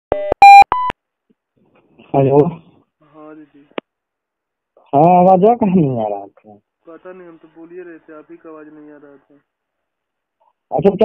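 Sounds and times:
electronic telephone beeps rising: 0.1s - 0.9s.

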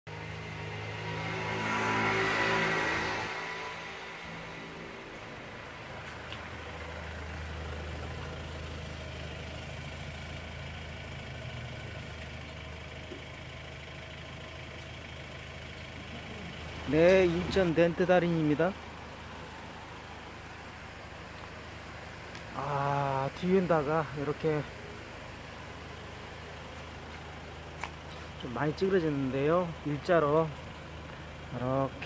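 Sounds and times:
low engine hum: 0.1s - 32.0s
car passing on wet road: 0.2s - 11.2s.

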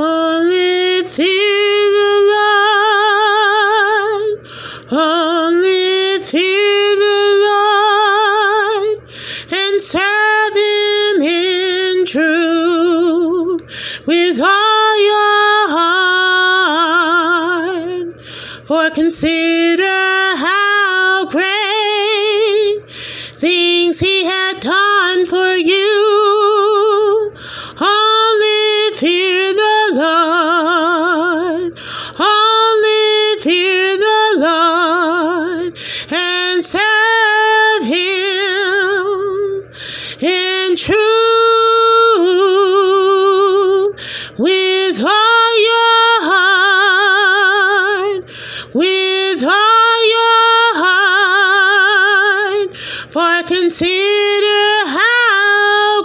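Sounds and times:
woman singing with vibrato: 0.0s - 56.0s
singer taking a breath: 4.4s - 4.9s, 9.0s - 9.5s, 13.6s - 14.1s, 18.1s - 18.7s, 22.8s - 23.4s, 27.3s - 27.8s, 31.8s - 32.2s, 35.7s - 36.1s, 39.6s - 40.2s, 43.9s - 44.4s, 48.2s - 48.8s, 52.7s - 53.1s.

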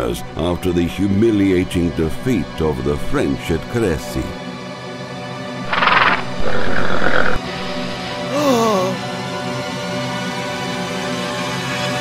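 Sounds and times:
music: 0.0s - 12.0s
horse neighing: 5.7s - 8.0s.

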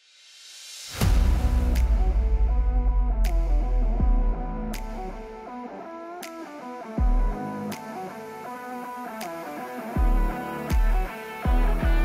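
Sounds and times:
deep bass hits: 1.0s - 5.4s
sharp snaps: 3.2s - 4.0s, 4.7s - 10.0s.

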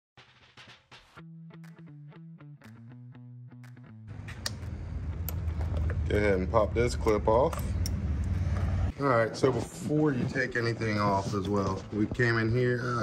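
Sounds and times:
intro music with plucked notes: 0.9s - 4.1s.

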